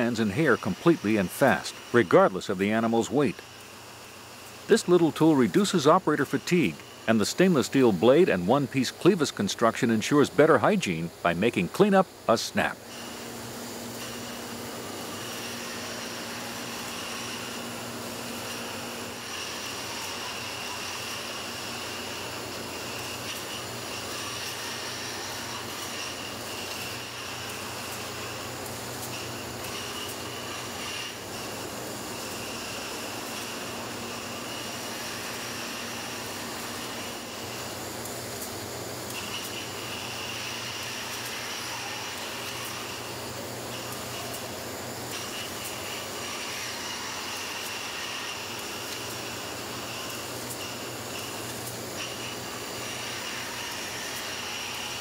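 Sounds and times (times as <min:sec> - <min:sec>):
high steady whine: 0:00.0 - 0:55.0
machinery noise: 0:00.0 - 0:55.0.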